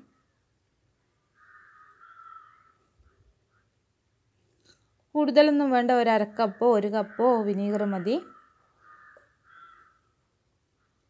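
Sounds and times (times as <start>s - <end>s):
faint short bird calls: 1.4s - 3.7s, 8.3s - 10.2s.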